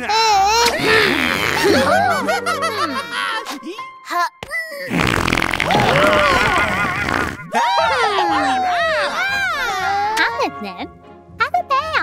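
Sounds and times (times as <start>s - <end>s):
cartoon fart sound effect: 0.7s - 1.9s, 4.9s - 7.5s.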